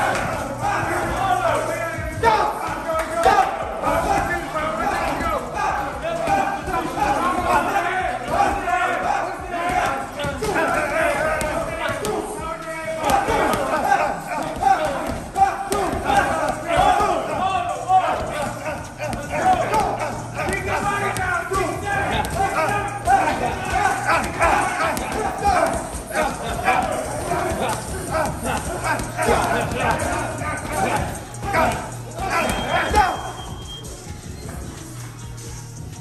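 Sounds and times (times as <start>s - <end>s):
overlapping voices and shouts: 0.0s - 36.0s.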